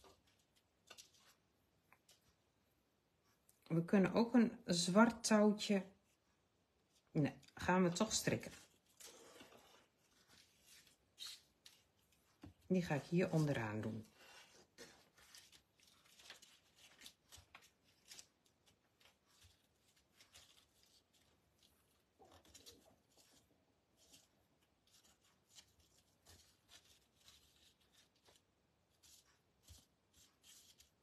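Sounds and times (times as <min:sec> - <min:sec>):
faint paper rustling: 0:00.0 - 0:02.5, 0:06.0 - 0:31.0.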